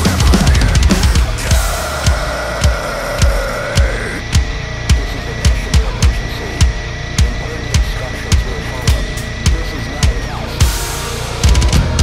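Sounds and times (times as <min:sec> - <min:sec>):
backing track music: 0:00.0 - 0:12.0
rock drum kit playing: 0:00.0 - 0:12.0.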